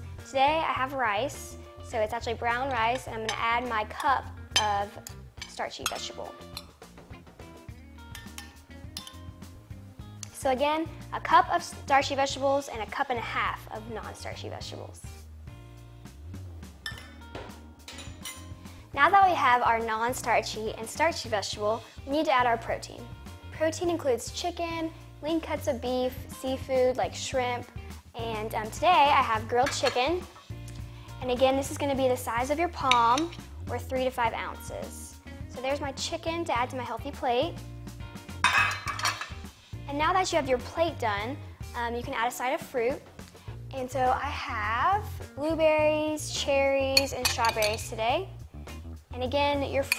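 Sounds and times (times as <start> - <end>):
background music: 0.0 - 49.9
metal spoon clinking steel cup: 2.6 - 6.8, 8.1 - 9.3, 16.8 - 17.2, 17.8 - 18.6, 32.8 - 33.5, 38.4 - 39.5, 47.0 - 48.0
tongs and plate clattering: 2.7 - 6.8, 8.1 - 9.3, 17.8 - 18.6, 29.6 - 30.1, 38.4 - 39.5, 47.0 - 48.0.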